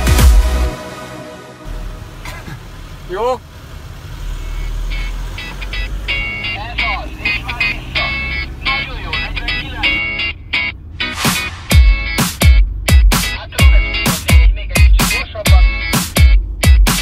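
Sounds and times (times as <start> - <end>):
car driving rumble: 1.6 - 17.0
music with stuttering beat: 11.0 - 17.0.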